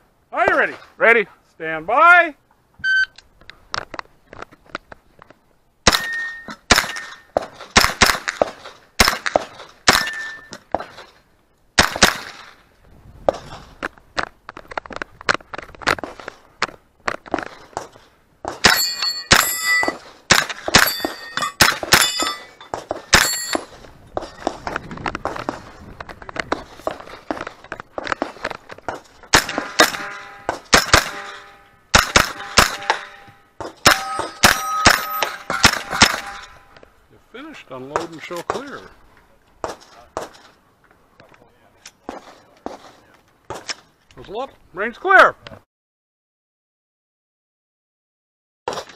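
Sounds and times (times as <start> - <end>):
steel targets ringing: 5.9 - 7.4, 9.9 - 10.6, 18.6 - 20.0, 20.7 - 24.4, 29.4 - 36.8
carbine gunshots: 7.7 - 10.3, 11.8 - 12.6, 18.6 - 22.4, 29.3 - 36.6.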